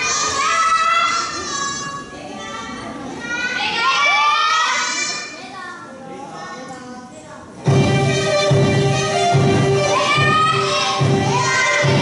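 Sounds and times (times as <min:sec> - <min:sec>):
children shouting: 0:00.0 - 0:05.6, 0:09.7 - 0:12.0.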